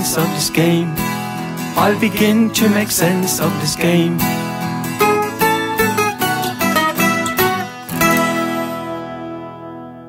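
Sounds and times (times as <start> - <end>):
acoustic guitar ballad: 0.0 - 10.0.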